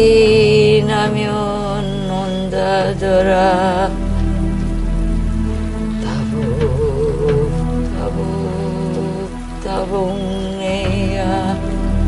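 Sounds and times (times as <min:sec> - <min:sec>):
music with long steady notes: 0:00.0 - 0:12.0
rain falling: 0:00.0 - 0:12.0.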